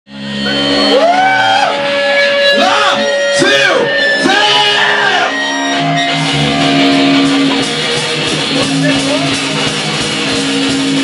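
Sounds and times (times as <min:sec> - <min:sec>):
rock band amplified instruments: 0:00.1 - 0:11.0.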